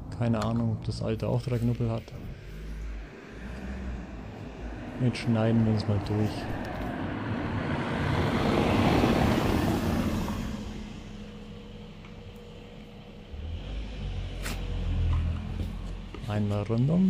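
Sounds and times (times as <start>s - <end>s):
low rumble: 0.0s - 17.0s
road vehicle passing: 0.8s - 17.0s.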